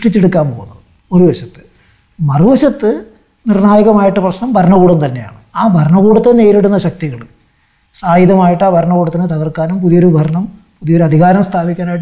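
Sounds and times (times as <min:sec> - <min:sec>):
man talking: 0:00.0 - 0:07.3, 0:08.0 - 0:12.0.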